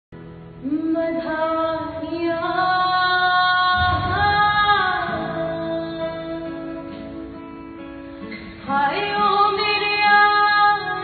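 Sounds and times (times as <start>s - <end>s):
acoustic guitar: 0.1s - 11.0s
woman singing a folk song: 0.6s - 11.0s.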